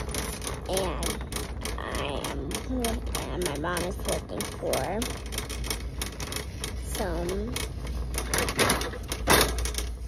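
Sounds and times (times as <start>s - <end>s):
shopping cart rattling: 0.0s - 10.0s.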